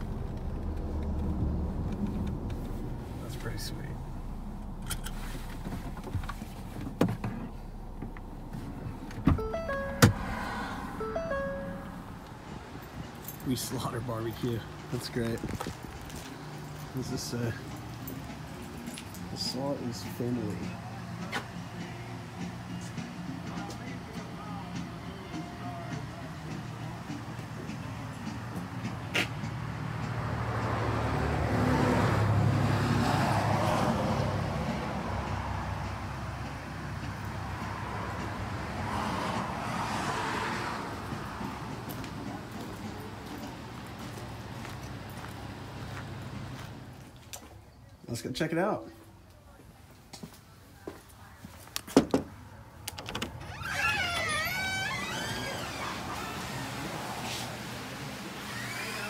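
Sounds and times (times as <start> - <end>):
vehicle passing on road: 0.0 - 19.4, 26.8 - 47.3, 52.5 - 59.0
door hinges creaking: 52.9 - 56.8, 58.4 - 59.0.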